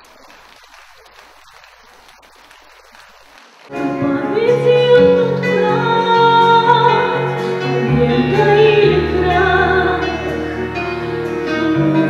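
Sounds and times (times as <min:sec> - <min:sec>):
audience applauding: 0:00.0 - 0:03.8.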